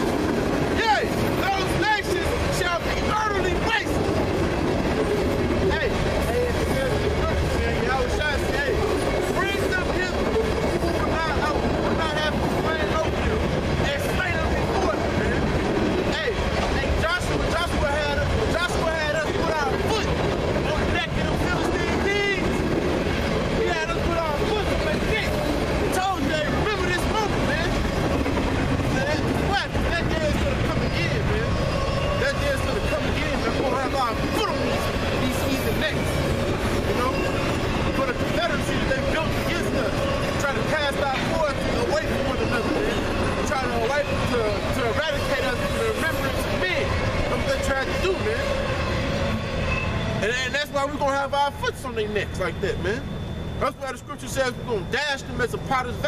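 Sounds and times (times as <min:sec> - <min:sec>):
men talking indistinctly: 0:00.0 - 0:56.0.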